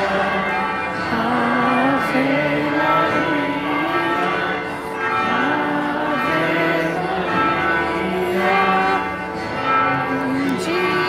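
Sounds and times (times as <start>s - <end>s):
hymn sung slowly: 0.0s - 11.0s.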